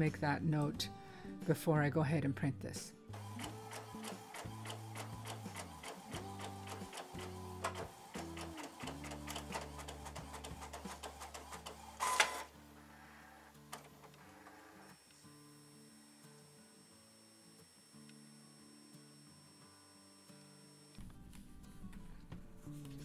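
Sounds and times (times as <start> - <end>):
printer rush: 3.2 - 15.0
printer motor tones: 3.2 - 21.0
printer carriage clicking: 3.7 - 12.5.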